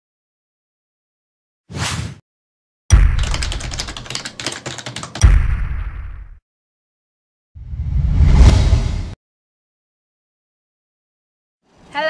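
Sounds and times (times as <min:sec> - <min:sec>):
deep boom: 0:05.2 - 0:06.4.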